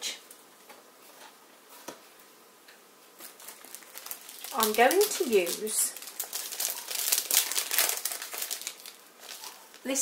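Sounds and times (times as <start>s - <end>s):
plastic packet crinkling: 3.2s - 10.0s.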